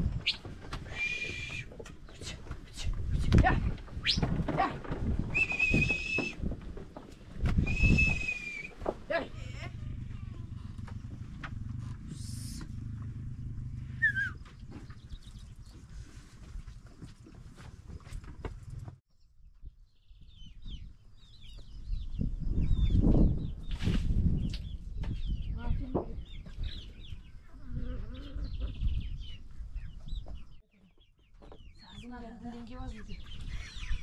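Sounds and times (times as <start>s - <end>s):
low rumbling: 3.0s - 16.1s.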